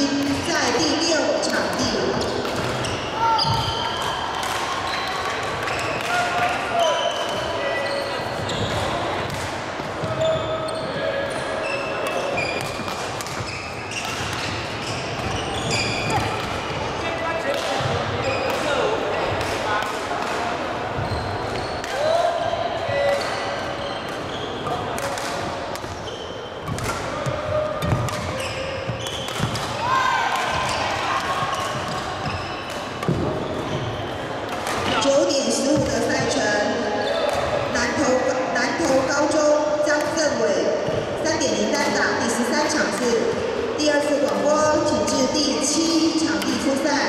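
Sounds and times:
echoing voices: 0.0 - 13.8, 29.6 - 47.0
racket hitting shuttlecock: 1.5 - 2.8, 12.0 - 15.4, 29.0 - 29.8
rackets striking shuttlecock: 1.5 - 2.8, 29.0 - 29.8
sneakers squeaking on wooden floor: 1.8 - 4.2, 4.8 - 17.0, 17.7 - 18.8, 20.8 - 22.0, 22.9 - 24.9, 25.8 - 37.5.

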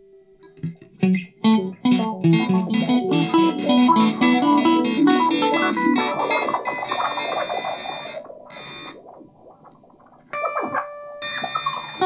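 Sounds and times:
electric guitar through effects: 0.0 - 12.0.

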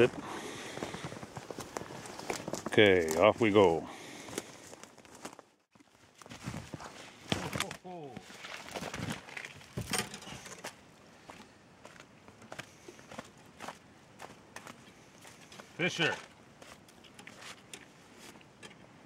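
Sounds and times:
footsteps crunching in snow: 0.0 - 9.8, 10.6 - 18.3.

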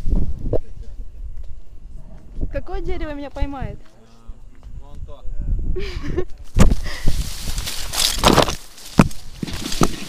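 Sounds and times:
leaves and branches scraping: 6.5 - 10.0
knocks and twig cracks: 7.4 - 10.0.

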